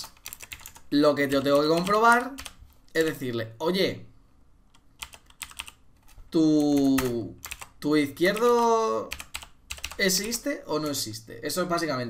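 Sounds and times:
computer keyboard typing: 0.0 - 3.1, 4.7 - 11.0.

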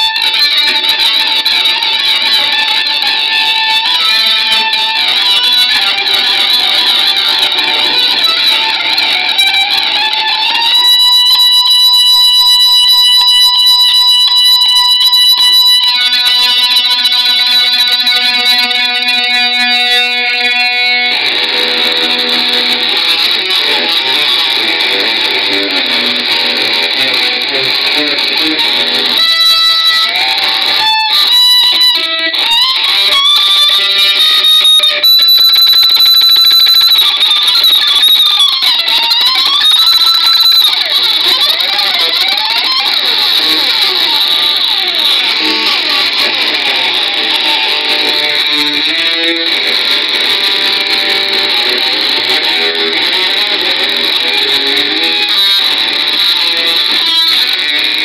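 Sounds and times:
metal music with electric guitar: 0.0 - 58.0.

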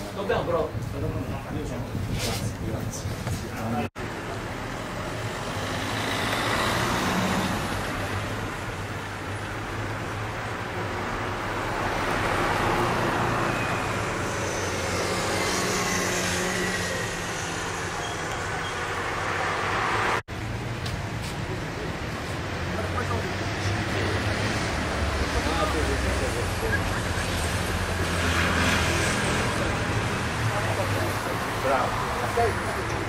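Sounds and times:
cars driving past: 4.0 - 33.0.

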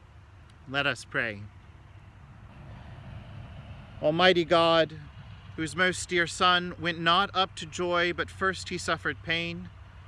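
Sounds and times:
distant road traffic rumble: 0.0 - 10.0.

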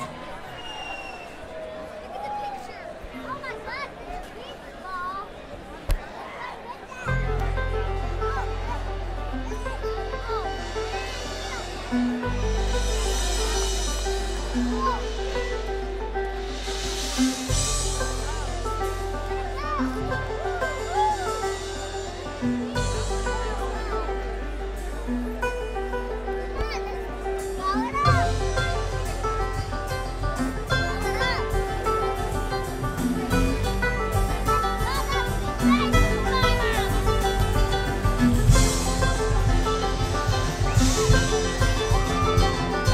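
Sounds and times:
banjo: 0.0 - 42.9
bluegrass band playing: 0.0 - 42.9
crowd voices: 0.0 - 42.9
mandolin: 2.6 - 42.9
acoustic guitar picking: 7.1 - 42.9
bass line: 7.1 - 42.9.

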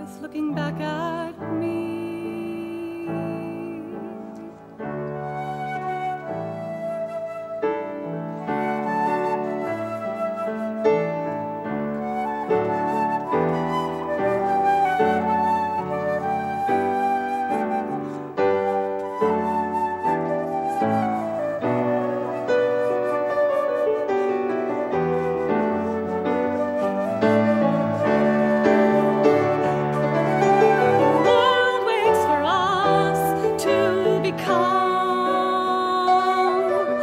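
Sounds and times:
flute melody: 0.0 - 37.0
piano chords: 0.0 - 37.0.

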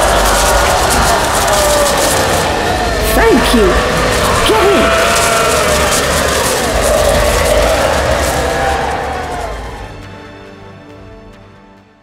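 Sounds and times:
faint wailing voices: 0.0 - 9.9
wind-like noise: 0.0 - 10.2.

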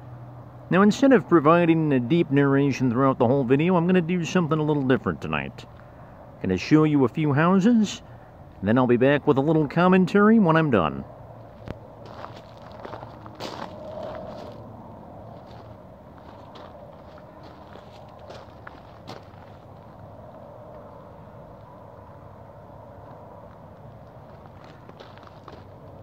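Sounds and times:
footsteps on a street: 11.4 - 26.0.

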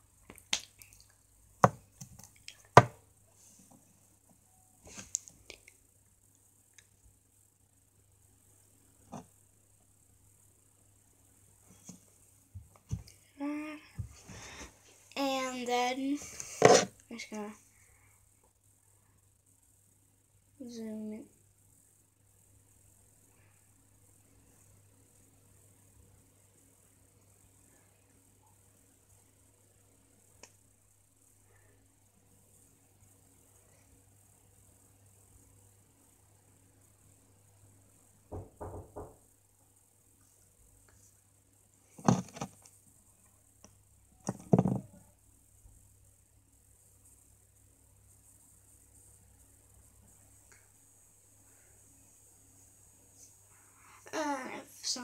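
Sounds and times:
faint steady hum: 0.0 - 55.0
knocking: 38.3 - 39.2.

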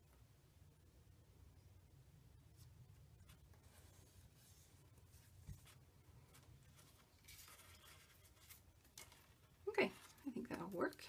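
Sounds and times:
paper rustling: 3.2 - 11.0.

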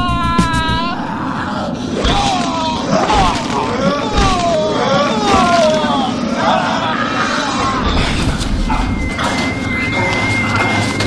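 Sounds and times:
thin high whine: 5.8 - 11.0.

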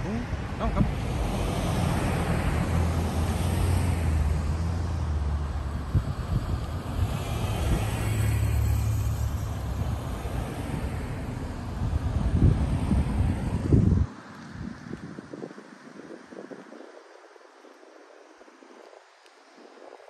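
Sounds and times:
cars passing: 0.0 - 16.8.

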